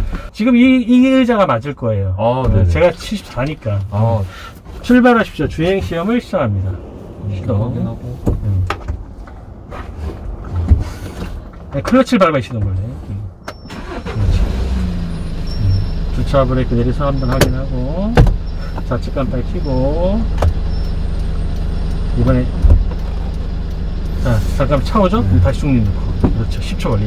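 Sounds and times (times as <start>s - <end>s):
turn signal ticking: 2.4s - 27.0s
truck engine idling: 15.0s - 27.0s
low thump: 17.4s - 18.4s.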